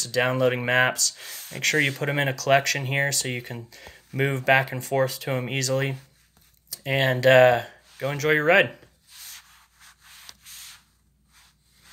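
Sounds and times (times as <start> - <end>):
hand rubbing touchscreen: 7.8 - 11.9.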